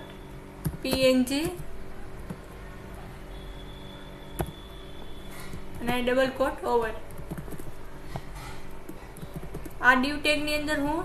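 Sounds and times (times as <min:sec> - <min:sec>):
person speaking: 0:00.8 - 0:01.7
keyboard and mouse clicks: 0:04.4 - 0:04.6.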